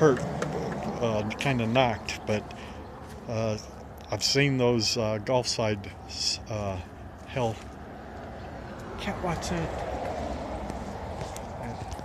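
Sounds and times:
footsteps on concrete: 0:09.7 - 0:12.0.

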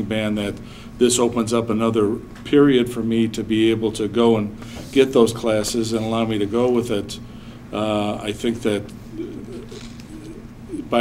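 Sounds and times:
man speaking: 0:00.0 - 0:11.0
man hesitating: 0:09.1 - 0:11.0.

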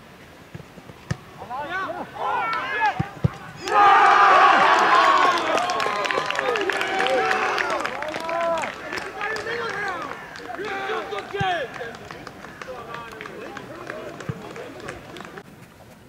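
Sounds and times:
people shouting in celebration: 0:01.6 - 0:14.2
people clapping: 0:03.6 - 0:15.4.

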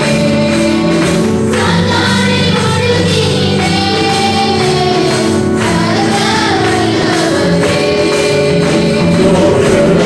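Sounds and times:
live instrumental backing: 0:00.0 - 0:10.0
women singing worship song: 0:00.0 - 0:10.0.

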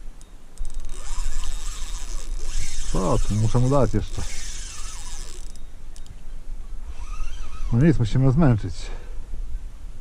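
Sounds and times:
fishing reel ratcheting click: 0:00.6 - 0:06.1.

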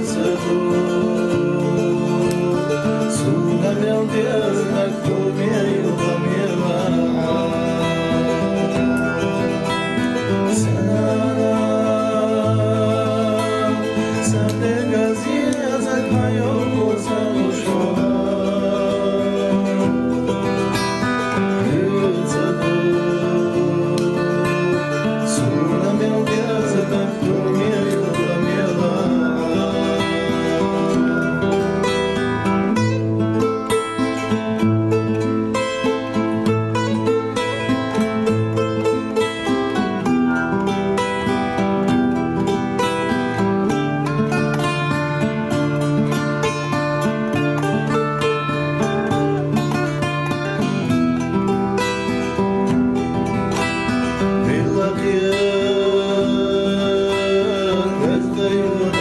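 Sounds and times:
plucked string song with melody: 0:00.0 - 0:59.0.

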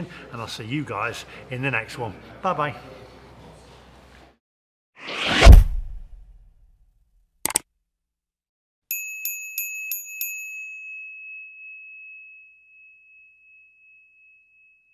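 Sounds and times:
small bell ringing: 0:08.9 - 0:14.9.

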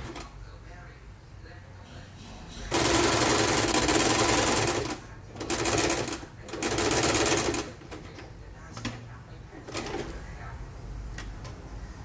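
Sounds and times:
sewing machine stitching: 0:02.7 - 0:08.1.

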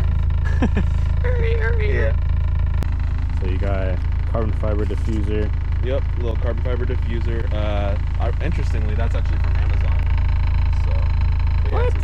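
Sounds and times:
voices: 0:00.0 - 0:02.2, 0:03.3 - 0:10.1, 0:10.7 - 0:12.0
car engine idling: 0:00.0 - 0:12.0.

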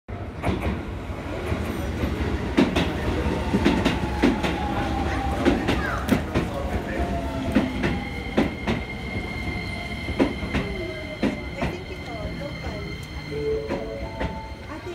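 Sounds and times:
train wheels clicking over rail joints: 0:07.4 - 0:14.5.

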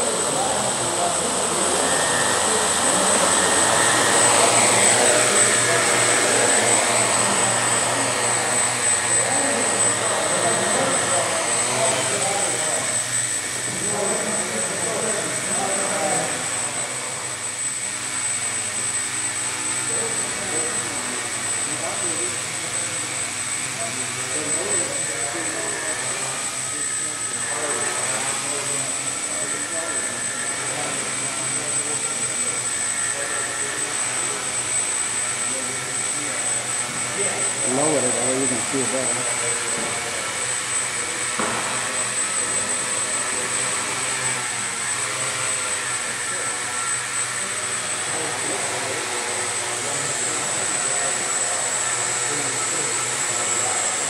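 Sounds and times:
quadcopter motors whirring: 0:00.0 - 0:54.0.

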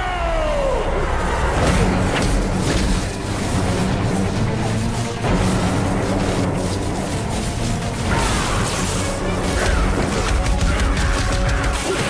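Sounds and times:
dramatic film score: 0:00.0 - 0:12.0.

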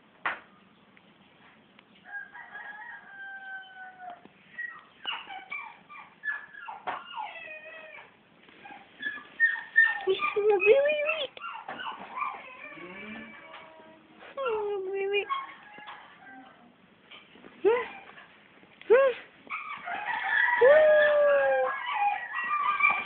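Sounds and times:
high-pitched animal calls: 0:08.7 - 0:13.9, 0:19.5 - 0:23.0.

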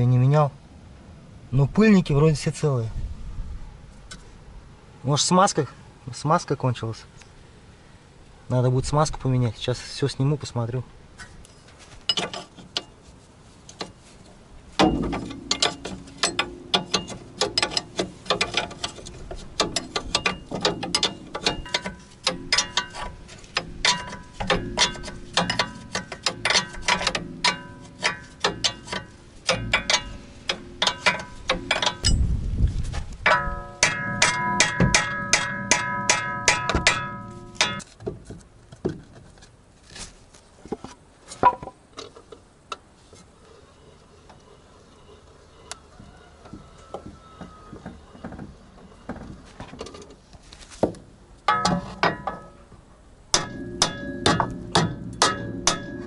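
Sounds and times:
metal tool knocks: 0:33.3 - 0:37.8, 0:51.5 - 0:52.6, 0:53.4 - 0:56.0.

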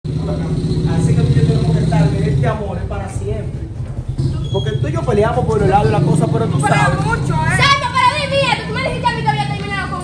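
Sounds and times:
engine running with low rumble: 0:00.1 - 0:10.0
voices talking: 0:00.1 - 0:10.0.

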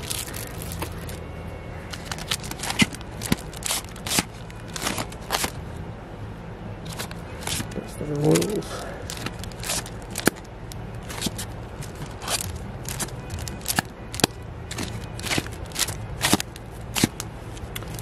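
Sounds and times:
steady low hum: 0:00.0 - 0:18.0
records in plastic sleeves flicking: 0:01.9 - 0:05.6, 0:06.9 - 0:18.0.

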